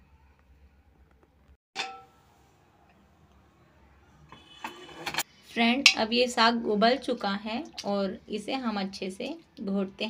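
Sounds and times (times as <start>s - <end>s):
metallic clink of cookware: 1.8s - 2.2s
utensils clattering: 4.4s - 5.2s.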